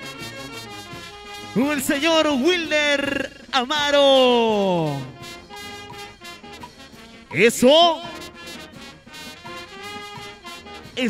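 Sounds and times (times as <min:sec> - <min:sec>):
trumpets and saxophones: 0:00.0 - 0:03.8, 0:04.5 - 0:11.0
sousaphone bass: 0:01.6 - 0:08.4
drum kit beat: 0:04.5 - 0:08.6.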